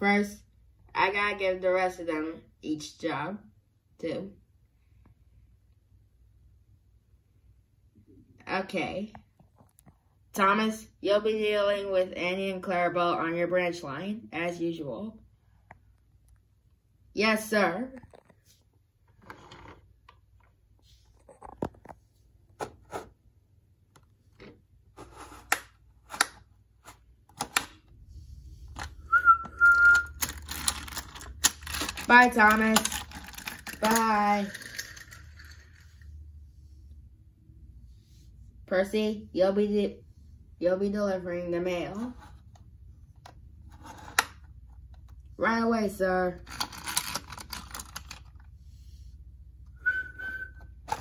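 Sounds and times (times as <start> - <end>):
steady whistle note: 29.1 - 30.1, 49.8 - 50.6
toy trains rattling: 30.1 - 36.0, 46.4 - 48.3.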